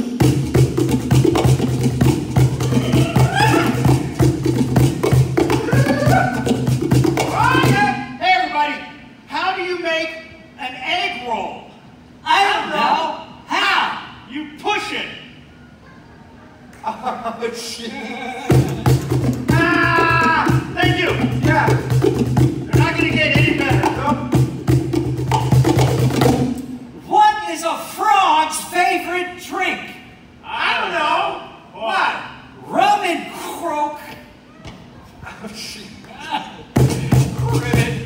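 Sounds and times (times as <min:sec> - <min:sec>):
cajon drum slaps: 0:00.0 - 0:08.0, 0:18.5 - 0:26.8, 0:36.7 - 0:38.0
men calling out: 0:02.4 - 0:04.2, 0:05.4 - 0:08.5, 0:12.2 - 0:15.0, 0:17.4 - 0:22.0, 0:34.8 - 0:38.0.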